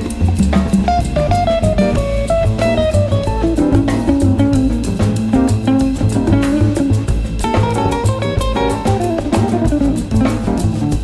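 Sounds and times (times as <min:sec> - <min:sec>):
bass: 0:00.0 - 0:11.0
drum kit with cymbals: 0:00.0 - 0:11.0
jazz guitar melody: 0:00.0 - 0:11.0.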